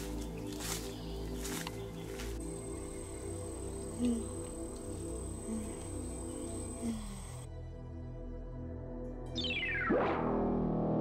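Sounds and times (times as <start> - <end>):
low droning music: 0.0 - 11.0.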